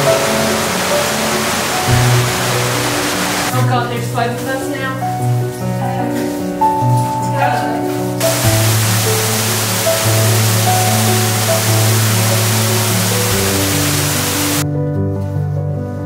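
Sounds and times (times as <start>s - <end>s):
rushing waterfall: 0.0s - 3.5s, 8.2s - 14.6s
music of held notes: 6.1s - 14.6s.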